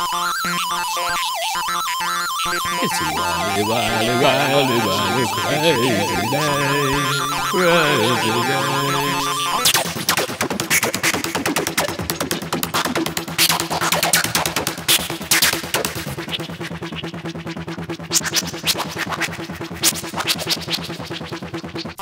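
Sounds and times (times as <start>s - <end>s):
synthesizer: 2.6s - 10.0s
drum machine beat: 2.8s - 9.6s.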